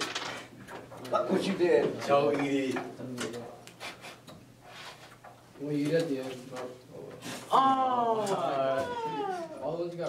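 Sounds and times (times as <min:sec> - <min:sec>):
boy crying out in high whine: 0:07.5 - 0:09.8.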